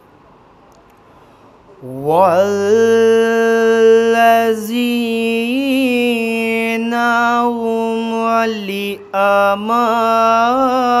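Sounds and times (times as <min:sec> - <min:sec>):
man reciting melodically: 0:01.8 - 0:11.0.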